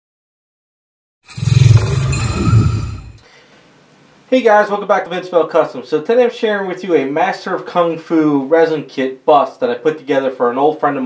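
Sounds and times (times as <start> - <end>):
deep roaring logo sound effect: 1.3 - 3.2.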